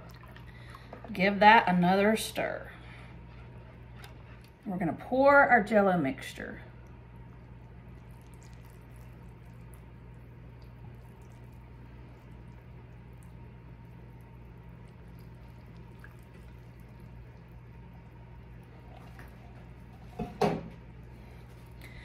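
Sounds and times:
liquid trickling: 0:00.0 - 0:00.9, 0:06.8 - 0:20.4
steady low hum: 0:00.0 - 0:22.0.

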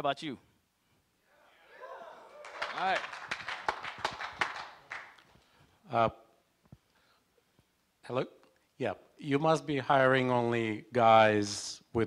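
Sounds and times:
speech in a hall: 0:01.2 - 0:06.4
man speaking into a microphone: 0:08.1 - 0:12.0.

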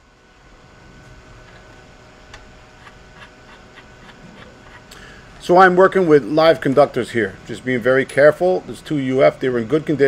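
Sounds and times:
background hum: 0:00.0 - 0:10.0.

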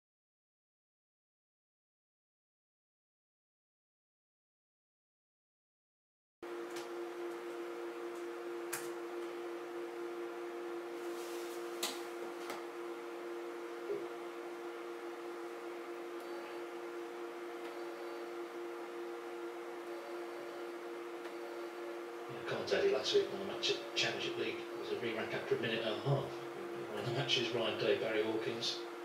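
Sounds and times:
stepper motor two-tone whine: 0:12.1 - 0:29.0.

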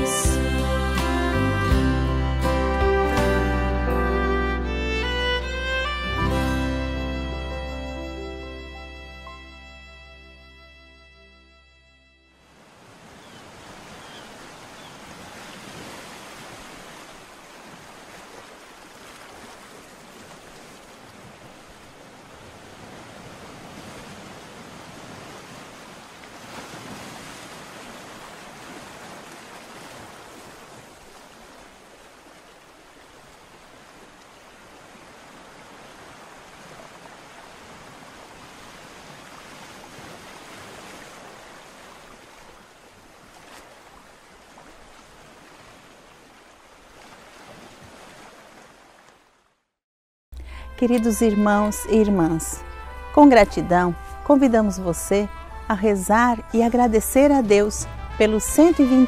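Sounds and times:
waves: 0:00.0 - 0:10.0, 0:12.4 - 0:49.7, 0:50.4 - 0:59.0
wind: 0:00.0 - 0:49.8, 0:50.4 - 0:59.0.

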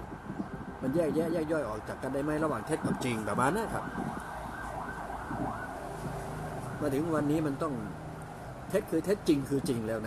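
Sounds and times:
distant siren-like tone: 0:02.6 - 0:07.1.

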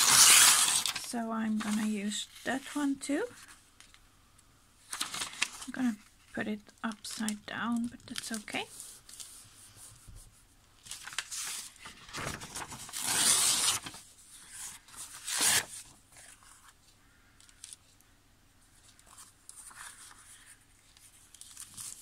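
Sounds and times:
paper being torn: 0:00.0 - 0:01.1, 0:11.0 - 0:14.0, 0:15.1 - 0:15.7
paper rustling: 0:00.0 - 0:04.0, 0:04.8 - 0:06.4, 0:07.0 - 0:18.0, 0:18.7 - 0:22.0.

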